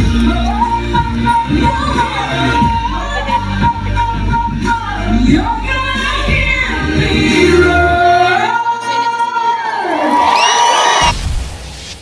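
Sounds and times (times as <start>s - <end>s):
woman singing into microphone: 0.0s - 10.2s.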